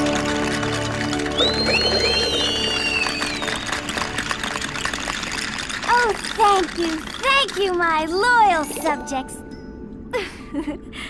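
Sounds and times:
cartoon music with trickling texture: 0:00.0 - 0:09.9
whistle-like gliding tones: 0:00.7 - 0:05.9.

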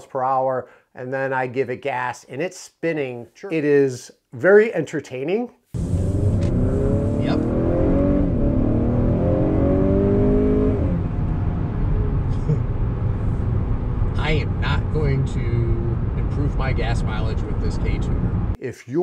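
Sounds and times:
car engine accelerating hard: 0:05.8 - 0:18.6
low road and engine hum: 0:05.8 - 0:18.6.

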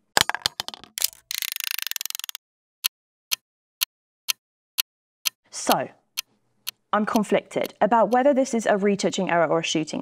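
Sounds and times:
wind-up timer ratcheting clicks: 0:01.0 - 0:02.4
sharp timer clicks: 0:03.8 - 0:04.4, 0:06.2 - 0:08.3.

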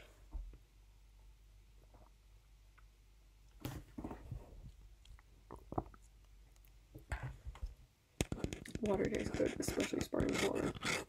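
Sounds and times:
person swallowing water: 0:05.1 - 0:06.0.

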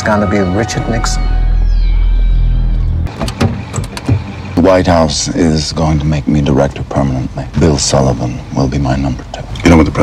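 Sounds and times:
deep steady drone: 0:00.0 - 0:09.2
car door clicks and knocks: 0:03.1 - 0:04.3.

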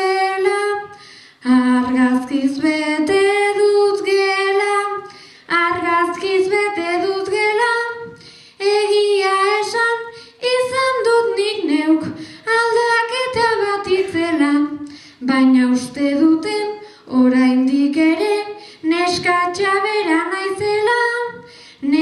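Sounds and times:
girl singing unaccompanied: 0:00.0 - 0:22.0.

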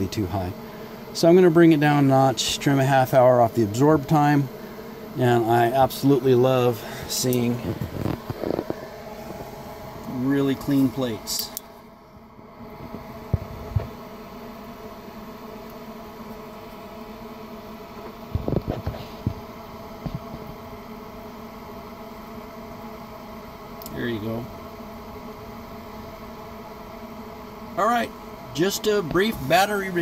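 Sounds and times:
steady machine hum: 0:00.0 - 0:30.0.

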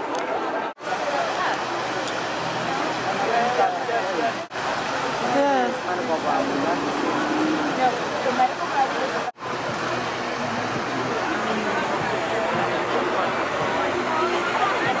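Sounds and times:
people talking: 0:00.0 - 0:15.0
fountain water pouring: 0:00.8 - 0:15.0.

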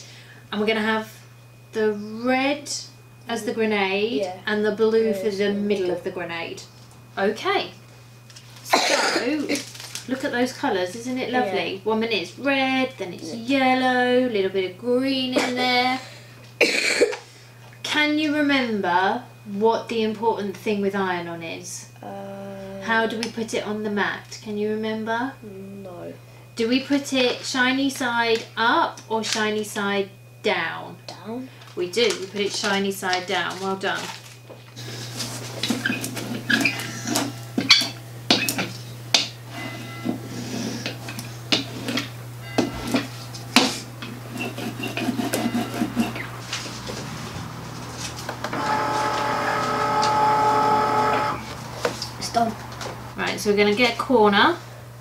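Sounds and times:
person coughing: 0:08.7 - 0:09.6, 0:15.4 - 0:17.3
hand roller rolling over vinyl: 0:44.4 - 0:51.6.

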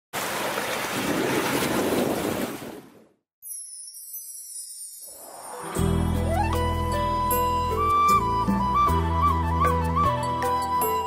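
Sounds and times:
high shimmering song intro: 0:03.4 - 0:07.7.

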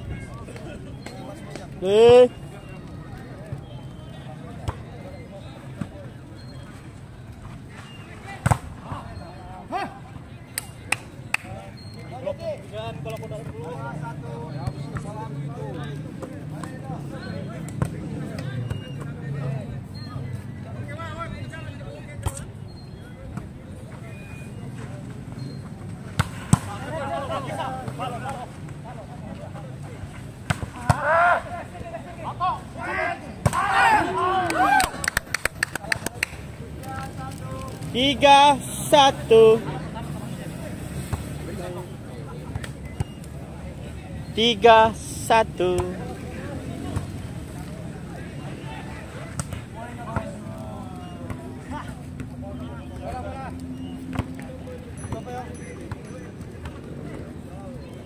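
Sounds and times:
chatter of players and spectators: 0:00.0 - 0:58.0
people calling out: 0:30.8 - 0:35.2.

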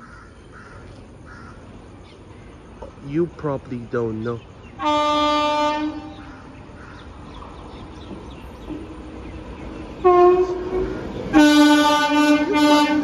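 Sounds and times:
train rumble: 0:00.0 - 0:13.0
train air horn blasts: 0:04.8 - 0:06.3, 0:10.0 - 0:13.0.

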